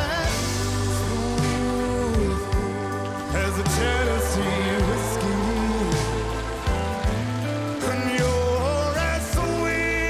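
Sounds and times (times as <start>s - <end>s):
drum hits and cymbal wash: 0.0s - 9.6s
live band playing slow ballad: 0.0s - 10.0s
person singing: 0.0s - 10.0s.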